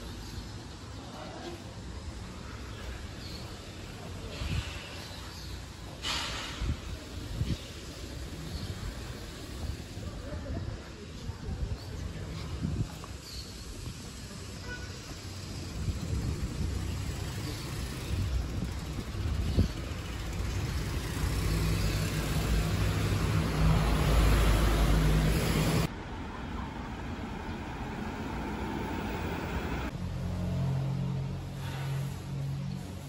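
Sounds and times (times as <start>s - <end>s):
street traffic: 0.0s - 33.0s
car passing: 20.2s - 31.9s.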